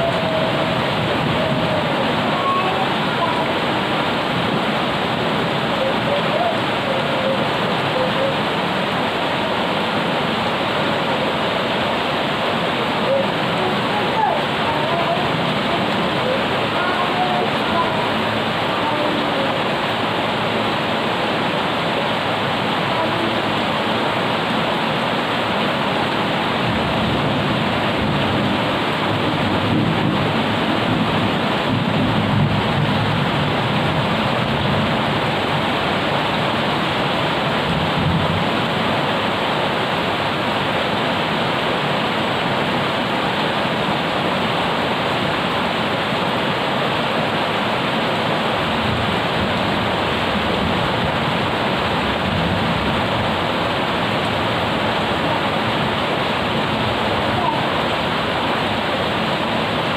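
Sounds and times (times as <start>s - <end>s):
heavy rain on pavement: 0.0s - 59.9s.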